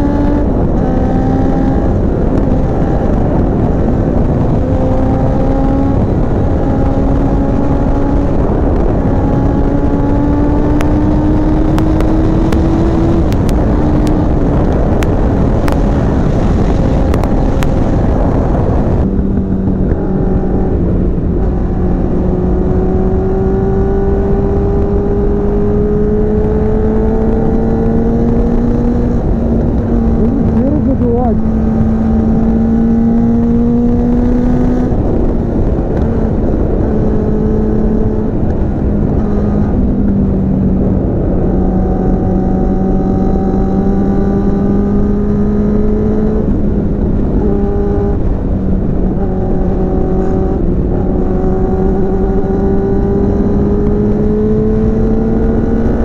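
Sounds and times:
motorcycle engine running: 0.0s - 56.0s
wind rumble on microphone: 0.0s - 56.0s.

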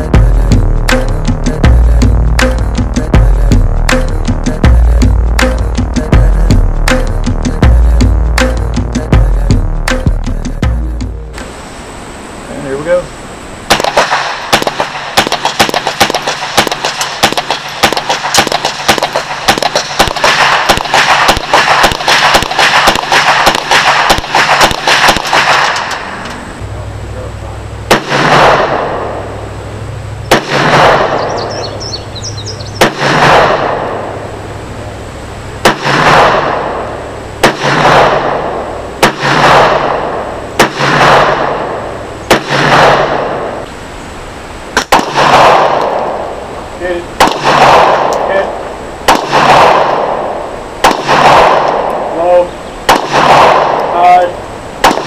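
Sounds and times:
pistol shots with echo: 13.7s - 26.2s, 27.9s - 29.3s, 30.3s - 32.0s, 32.8s - 34.3s, 35.6s - 43.6s, 44.8s - 46.4s, 47.2s - 55.0s
rapid rifle shots: 13.7s - 26.2s, 27.9s - 29.1s, 30.3s - 31.6s, 32.8s - 34.0s, 35.6s - 36.8s, 37.4s - 43.6s, 44.8s - 46.3s, 47.2s - 55.0s.

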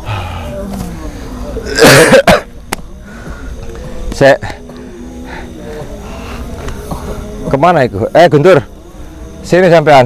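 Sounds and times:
cough-like vocal burst: 1.6s - 2.5s.

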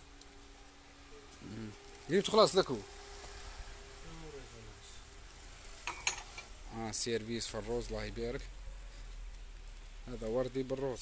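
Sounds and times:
faint steady hiss: 0.0s - 11.0s
porcelain cup clinking on saucer: 5.8s - 6.4s.

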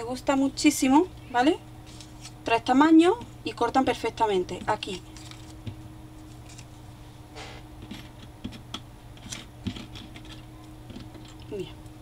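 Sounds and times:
paper rustle: 4.9s - 5.6s, 6.2s - 6.8s.

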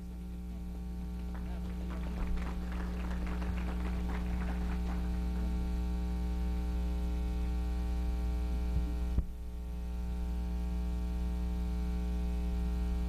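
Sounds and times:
electrical mains hum: 0.0s - 13.0s
light hand clapping: 1.2s - 5.6s.

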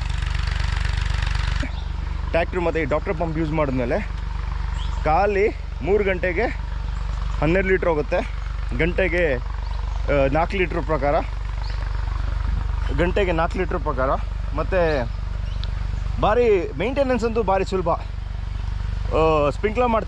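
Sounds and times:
steady low hum: 0.0s - 20.0s
man talking: 2.3s - 4.2s, 5.0s - 6.7s, 7.4s - 9.5s, 10.1s - 11.4s, 12.8s - 15.1s, 16.2s - 18.1s, 19.0s - 20.0s.

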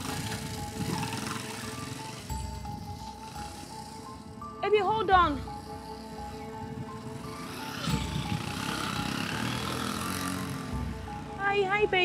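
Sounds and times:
soft background music: 0.0s - 12.0s
vehicle passing by: 5.4s - 12.0s.

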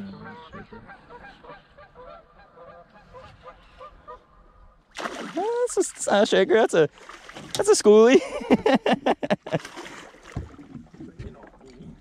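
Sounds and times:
geese honking: 0.0s - 4.4s.

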